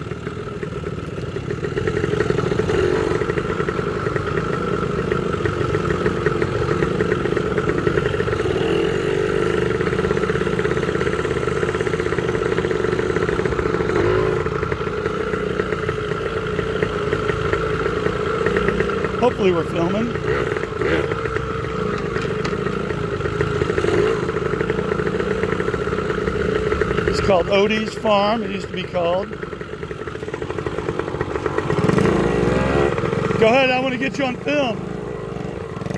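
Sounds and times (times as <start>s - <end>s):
motorcycle engine running: 0.0s - 35.9s.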